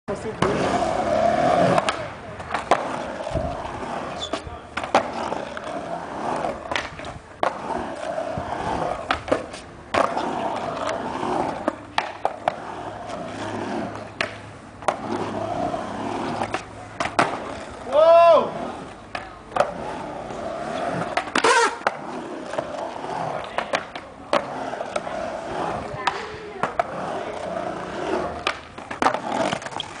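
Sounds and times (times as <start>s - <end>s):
skateboard wheels rolling on concrete: 0.1s - 30.0s
skateboard clacking on ramp: 1.6s - 3.6s, 4.2s - 5.8s, 8.7s - 12.6s, 16.3s - 19.8s, 21.0s - 25.1s, 25.8s - 30.0s.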